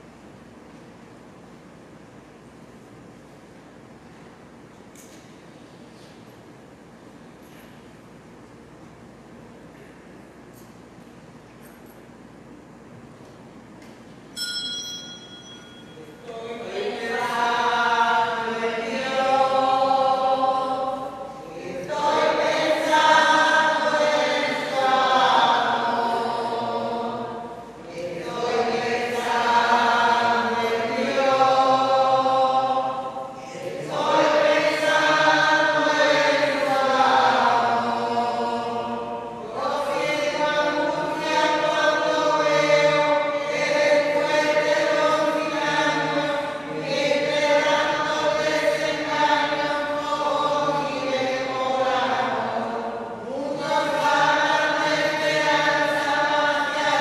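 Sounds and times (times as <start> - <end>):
hymn being sung: 15.7 - 57.0.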